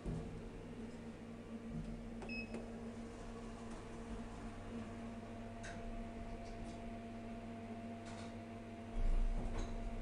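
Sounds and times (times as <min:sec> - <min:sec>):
elevator low hum: 0:00.0 - 0:10.0
short elevator beep: 0:02.3 - 0:02.6.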